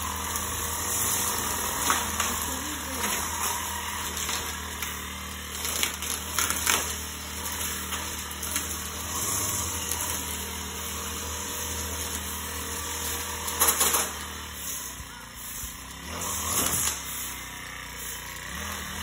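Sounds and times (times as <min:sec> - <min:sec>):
brush cutter engine cutting grass: 0:00.0 - 0:19.0.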